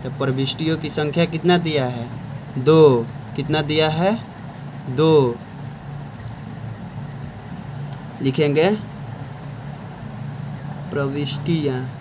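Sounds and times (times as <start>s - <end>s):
low mechanical hum with hiss: 0.0s - 12.0s.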